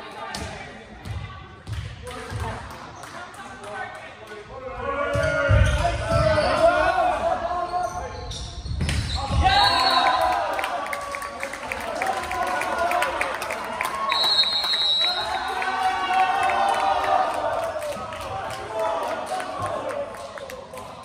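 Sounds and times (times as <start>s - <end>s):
players shouting: 9.1s - 21.0s.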